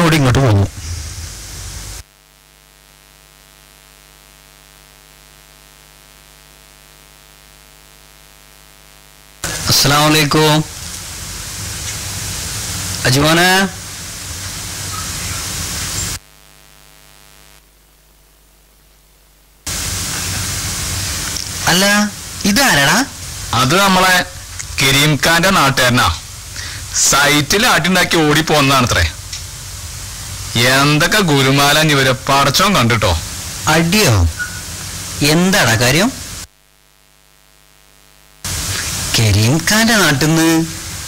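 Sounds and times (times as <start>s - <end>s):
faint hiss: 0.0s - 2.0s, 9.4s - 16.8s, 19.7s - 36.5s, 38.4s - 41.0s
electrical hum: 0.0s - 41.0s
room noise: 0.0s - 41.0s
low hum: 0.2s - 2.1s.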